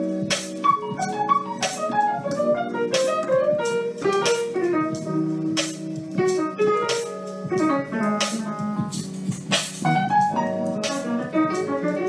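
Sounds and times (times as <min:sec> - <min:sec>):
jazz-funk piano solo: 0:00.0 - 0:12.0.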